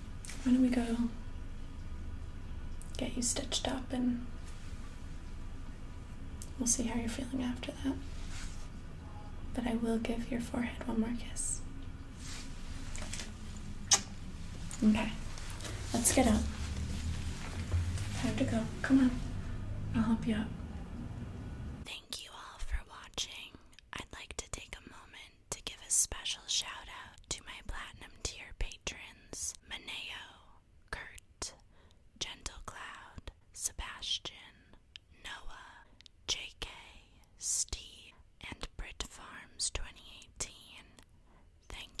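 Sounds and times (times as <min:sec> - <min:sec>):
woman whispering: 0:00.4 - 0:01.2, 0:02.9 - 0:04.3, 0:06.6 - 0:08.1, 0:09.5 - 0:11.7, 0:14.7 - 0:16.7, 0:18.1 - 0:20.7, 0:21.8 - 0:31.6, 0:32.2 - 0:41.0, 0:41.6 - 0:42.0.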